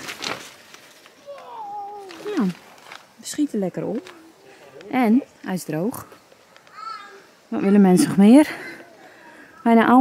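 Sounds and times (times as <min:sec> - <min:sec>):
tent fabric rustling: 0:00.0 - 0:05.2
woman speaking: 0:02.2 - 0:02.6, 0:03.2 - 0:04.1, 0:04.9 - 0:06.1, 0:07.5 - 0:08.8, 0:09.6 - 0:10.0.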